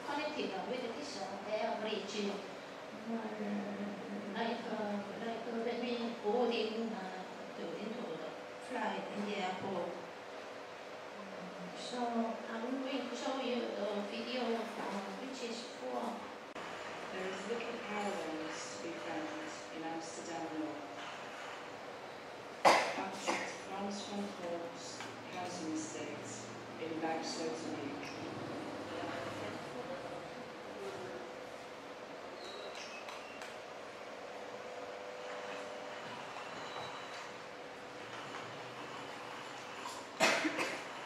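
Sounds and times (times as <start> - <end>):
faint steady hum: 0.0 - 41.0
person coughing: 40.2 - 40.9.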